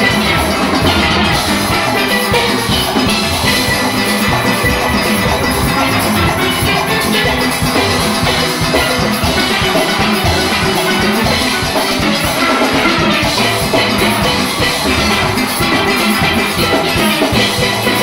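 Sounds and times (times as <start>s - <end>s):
drum and percussion beat: 0.0s - 18.0s
steel orchestra playing: 0.0s - 18.0s.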